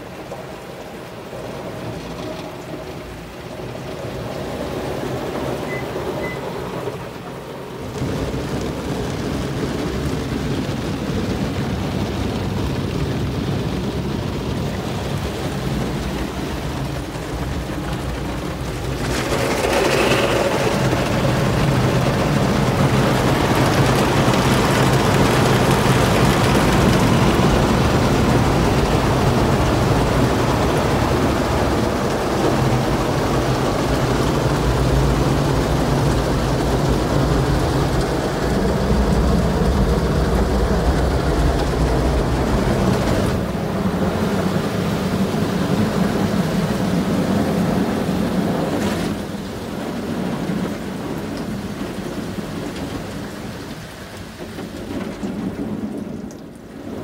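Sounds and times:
car wash spraying and scrubbing: 0.0 - 57.0.

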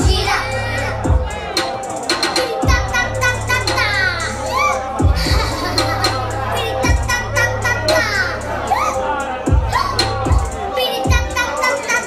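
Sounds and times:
loud hip hop music with bass: 0.0 - 12.0
raised voices: 0.0 - 12.0.

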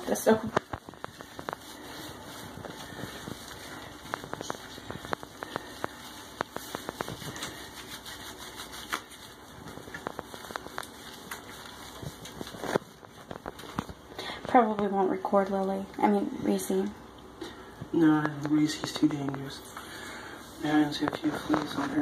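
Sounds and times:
hand scrubbing wet fur: 0.0 - 13.7.

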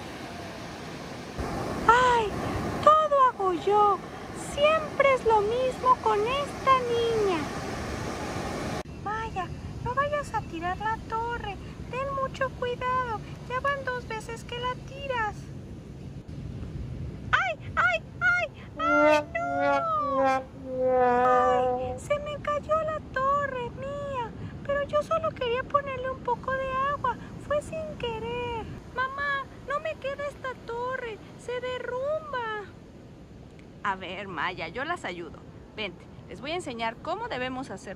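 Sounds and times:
ocean surf: 0.0 - 8.9, 17.6 - 22.1
high-pitched voice: 17.4 - 24.2
wind on microphone: 18.8 - 29.4.

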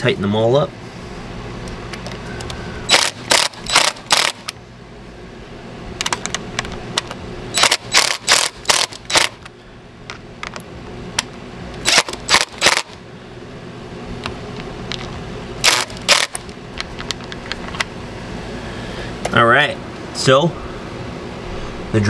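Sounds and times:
impact driver hammering screws: 2.9 - 4.5, 7.6 - 9.4, 11.8 - 13.0, 15.6 - 16.4.

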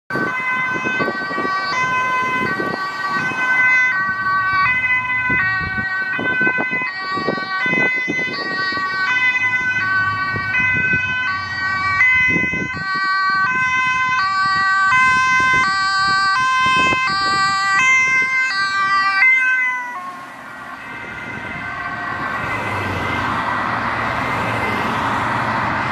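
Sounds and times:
ambulance two-tone siren: 0.1 - 25.9
cars passing: 0.1 - 25.9.

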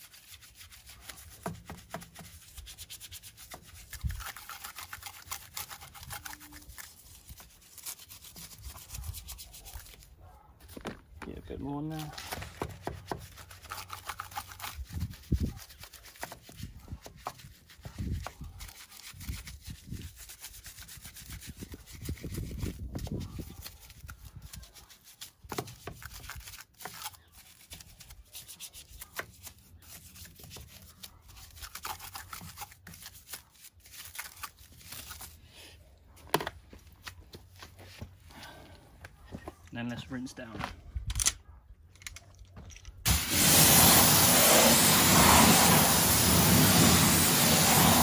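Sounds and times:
brush scrubbing a wheel: 0.0 - 10.1, 11.8 - 35.4, 43.1 - 48.0.

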